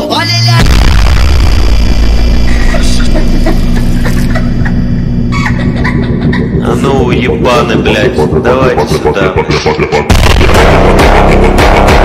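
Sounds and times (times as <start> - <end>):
slowed electronic bass music: 0.6 - 12.0.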